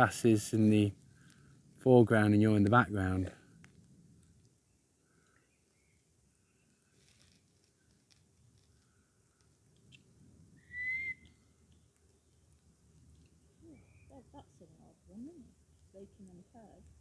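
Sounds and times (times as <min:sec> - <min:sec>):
faint birdsong whistled notes: 0:04.6 - 0:07.2, 0:08.8 - 0:12.5, 0:13.4 - 0:14.3.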